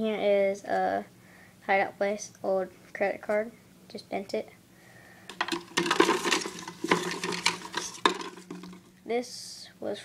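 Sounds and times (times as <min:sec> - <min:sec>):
plastic lids knocking together: 0:05.3 - 0:08.9.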